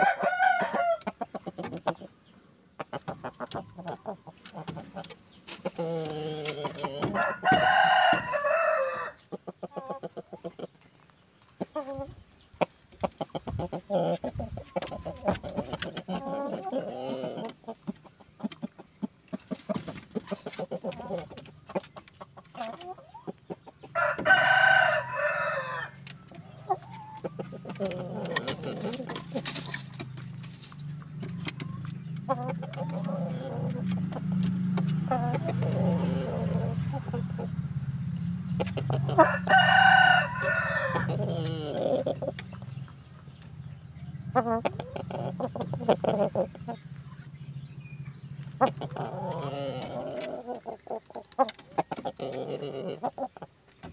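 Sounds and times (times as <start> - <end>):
rooster crowing: 0.0 - 1.1, 7.0 - 9.2, 24.0 - 26.0, 39.1 - 41.3
chicken calls: 0.0 - 53.9.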